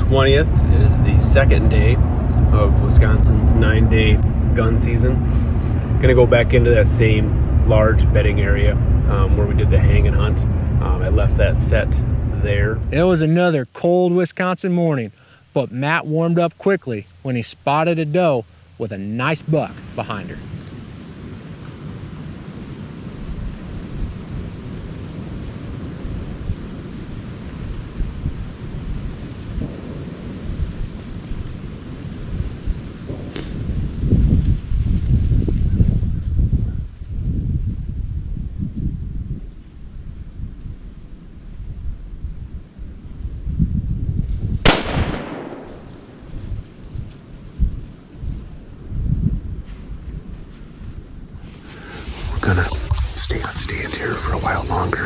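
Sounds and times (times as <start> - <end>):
low rumble on microphone: 0.0 - 13.3, 19.8 - 55.0
rifle shot: 44.6 - 46.5.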